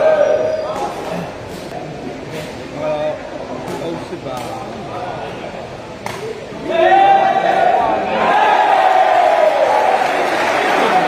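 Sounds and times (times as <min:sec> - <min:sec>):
spectators' voices in a hall: 0:00.0 - 0:11.0.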